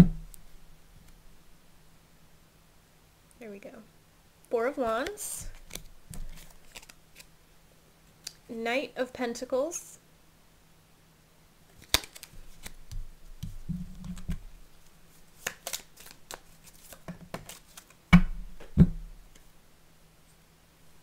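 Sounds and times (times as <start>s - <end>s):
cards shuffling: 4.8s - 7.3s, 11.7s - 18.0s.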